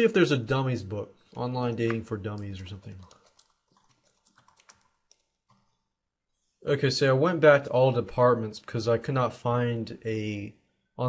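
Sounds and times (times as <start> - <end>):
faint keyboard typing: 1.2 - 5.8.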